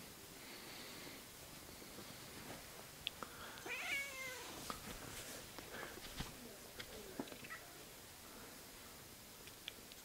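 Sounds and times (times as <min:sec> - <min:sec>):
faint hiss: 0:00.0 - 0:10.0
cat meowing faintly: 0:03.6 - 0:04.6.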